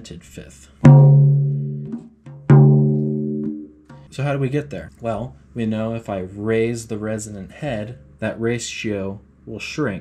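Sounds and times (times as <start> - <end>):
tom drum struck with mallet: 0.8 - 4.1.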